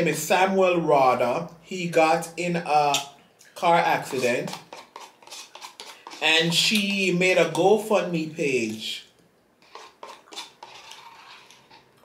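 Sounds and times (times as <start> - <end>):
plastic spoon scraping paper cup: 3.7 - 7.6, 9.6 - 12.0.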